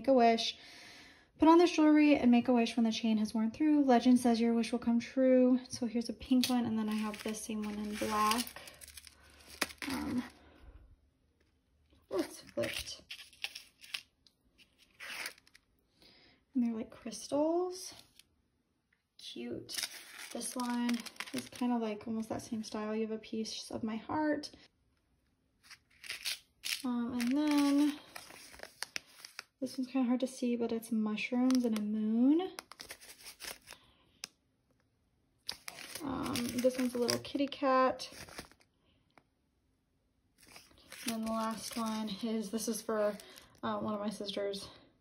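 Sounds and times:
paper cards rustling on stone: 6.3s - 10.3s, 12.2s - 15.6s, 19.7s - 21.7s, 25.6s - 29.6s, 32.6s - 33.8s, 35.5s - 37.4s, 38.1s - 38.7s, 40.4s - 43.4s
plastic bag crinkling: 6.3s - 10.3s, 12.2s - 15.6s, 19.7s - 21.7s, 25.6s - 29.6s, 32.6s - 33.8s, 35.5s - 38.7s, 40.4s - 43.6s.

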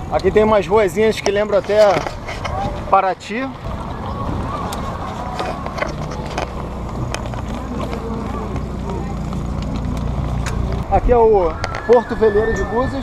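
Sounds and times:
bicycle rolling over cobblestones: 0.0s - 13.0s.

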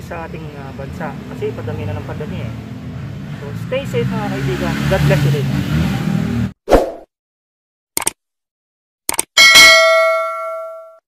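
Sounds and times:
quick clicks: 8.0s - 8.2s, 9.1s - 9.3s
bright bell ding: 9.4s - 11.0s.

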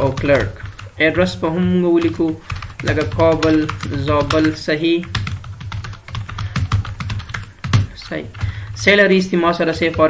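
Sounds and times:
keyboard typing: 0.0s - 10.0s.

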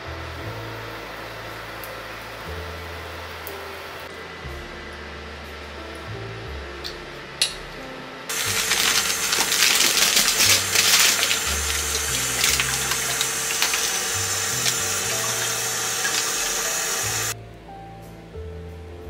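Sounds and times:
background music: 0.0s - 19.0s
tap water running onto berries: 8.3s - 17.4s.

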